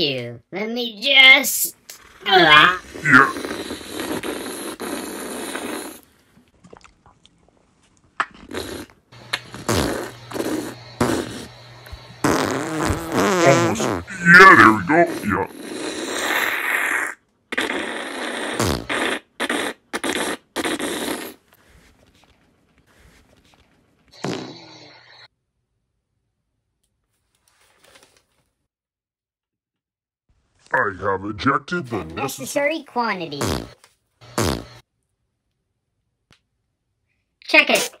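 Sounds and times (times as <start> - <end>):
comic fart noise: 1.9 - 6.2, 8.3 - 21.5, 24.1 - 24.8, 33.3 - 34.9.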